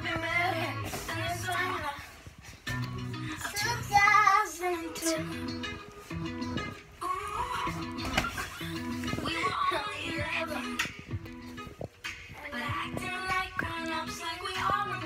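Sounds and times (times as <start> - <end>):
girl singing: 0.0 - 2.7, 3.3 - 5.9, 7.0 - 11.4, 12.3 - 15.0
pop music with bass line: 0.0 - 15.0.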